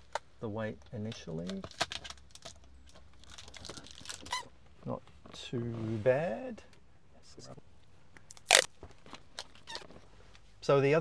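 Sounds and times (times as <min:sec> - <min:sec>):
sharp handling crackle: 0:08.3 - 0:10.0.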